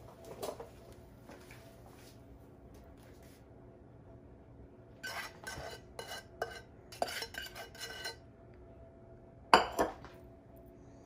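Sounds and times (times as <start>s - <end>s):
utensil scraping a saucepan: 5.0s - 8.2s.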